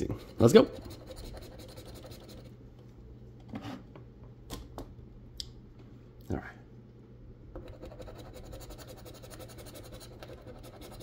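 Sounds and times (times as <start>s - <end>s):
coin scratching lottery ticket: 0.3s - 2.5s, 7.6s - 11.0s.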